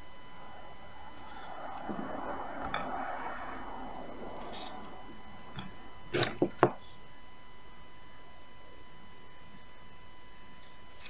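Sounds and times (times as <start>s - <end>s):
faint electrical whine: 0.0s - 11.0s.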